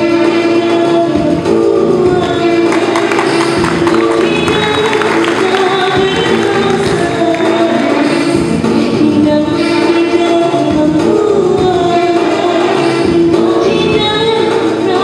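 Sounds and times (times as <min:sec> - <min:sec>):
amplified backing music: 0:00.0 - 0:15.0
girl singing into microphone: 0:00.0 - 0:15.0
drum beat: 0:02.1 - 0:08.9.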